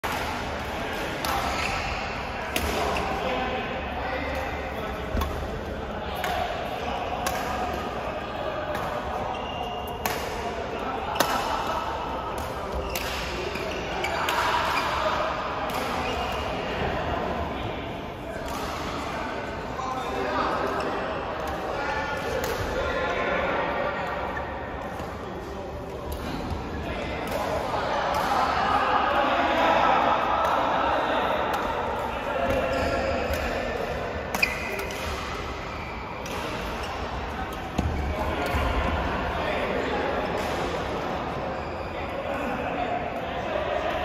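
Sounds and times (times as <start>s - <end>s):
murmur of voices: 0.0s - 44.0s.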